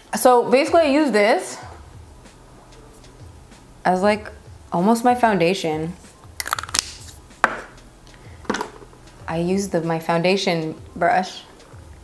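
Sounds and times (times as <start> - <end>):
makeup items clicking: 6.4 - 7.6.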